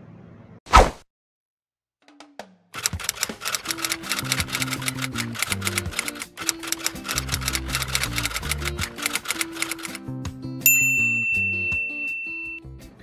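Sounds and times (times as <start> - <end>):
background music with low notes: 2.1 - 13.0
typewriter key clicks: 2.8 - 10.0.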